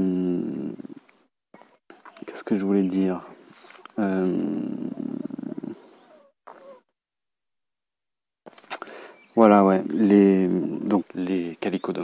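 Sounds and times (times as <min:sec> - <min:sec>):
man saying euh: 0:04.0 - 0:05.3, 0:09.6 - 0:11.6.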